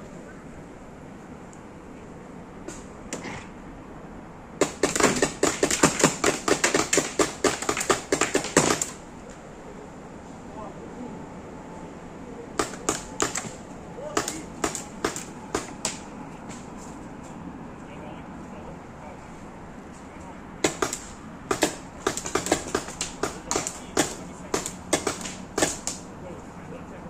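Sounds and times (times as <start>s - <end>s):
paintball markers firing: 4.6s - 9.0s, 12.6s - 16.1s, 20.6s - 26.0s.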